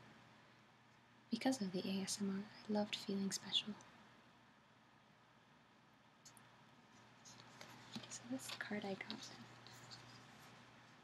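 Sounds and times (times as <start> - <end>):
paper card rustling: 6.9 - 11.0.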